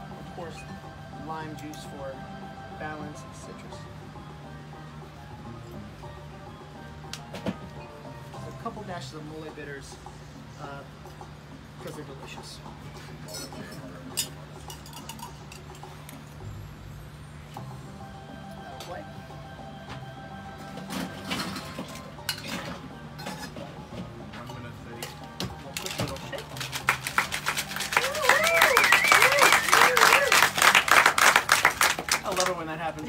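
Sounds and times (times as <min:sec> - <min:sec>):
glassware and bar tools clinking: 0:13.3 - 0:16.4
ice rattling in cocktail shaker: 0:25.8 - 0:31.4.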